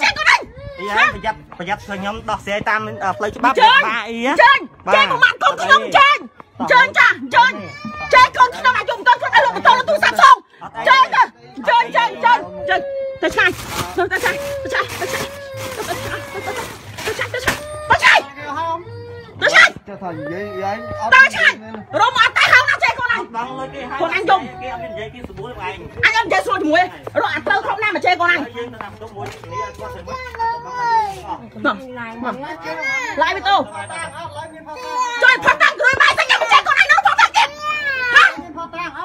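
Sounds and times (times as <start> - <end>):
people arguing loudly: 0.0 - 39.0.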